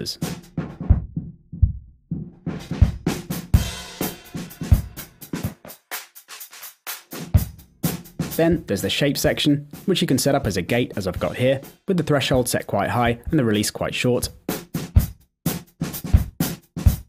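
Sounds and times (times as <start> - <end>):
drums playing: 0.0 - 17.0.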